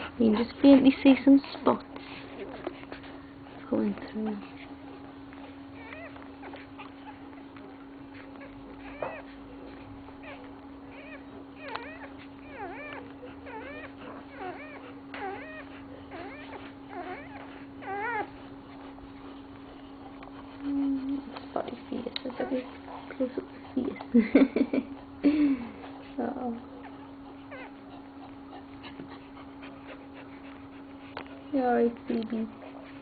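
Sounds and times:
steady low hum: 0.0s - 33.0s
puppies squeaking: 0.2s - 33.0s.

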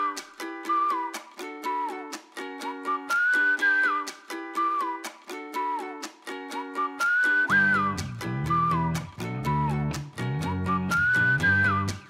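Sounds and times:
upbeat tune with whistled melody: 0.0s - 12.0s.

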